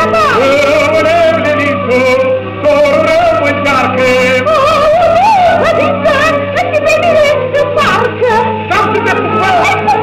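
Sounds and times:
musical accompaniment: 0.0 - 10.0
singing with wavering vibrato: 0.0 - 10.0.

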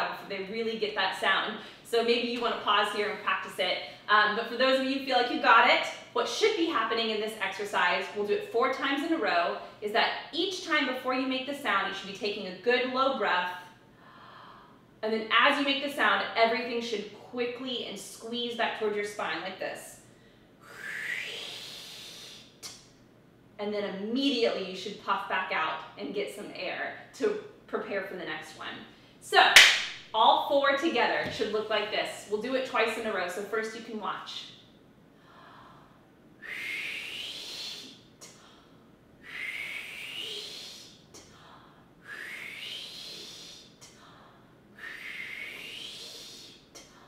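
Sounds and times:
woman's breathy exhale: 20.6 - 22.5, 35.2 - 47.0.

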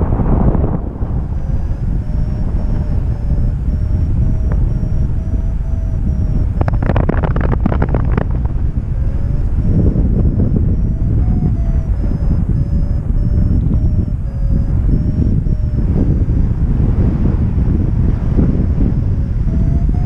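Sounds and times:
wind buffeting microphone: 0.0 - 20.0
rapid clicks and rattles: 6.5 - 9.3.

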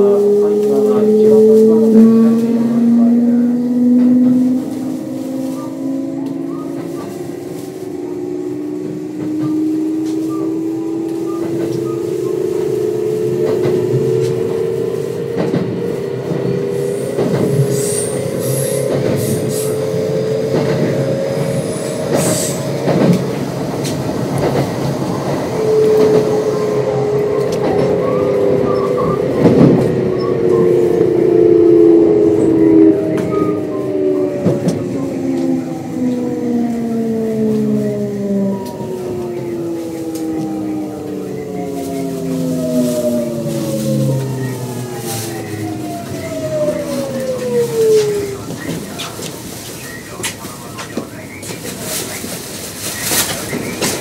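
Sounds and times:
braking tone falling in pitch: 0.0 - 23.3, 25.4 - 48.4
train motor tone rising in pitch: 0.0 - 49.3
train wheel squeal: 9.0 - 15.6, 16.5 - 20.0, 20.8 - 22.7.

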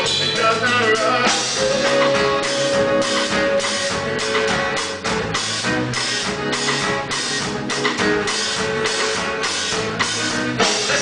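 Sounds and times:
drum kit with cymbals: 0.0 - 11.0.

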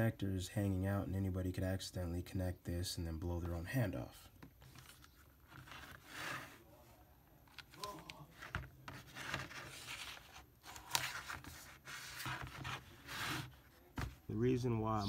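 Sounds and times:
rubbing noises on tabletop: 8.3 - 14.2.

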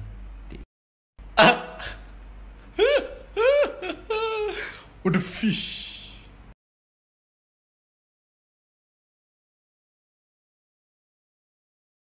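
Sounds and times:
man laughing: 1.4 - 2.1, 2.7 - 5.4.

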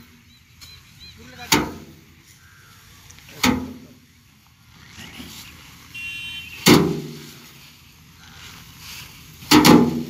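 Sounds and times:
sheaves striking a metal drum: 1.4 - 2.1, 3.4 - 3.9, 6.6 - 7.4, 9.4 - 10.0.

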